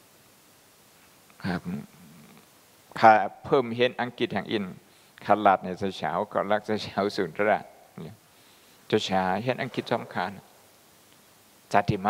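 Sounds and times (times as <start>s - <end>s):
man speaking into a microphone: 1.4s - 1.9s, 2.9s - 8.2s, 8.9s - 10.5s, 11.7s - 12.0s.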